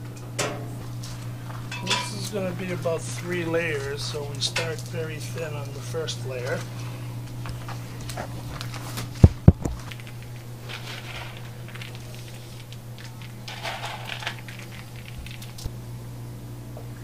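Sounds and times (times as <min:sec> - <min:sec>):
steady low hum: 0:00.0 - 0:17.0
nuts scattered by hand: 0:09.9 - 0:15.7
chocolate scraping on table: 0:10.6 - 0:15.5.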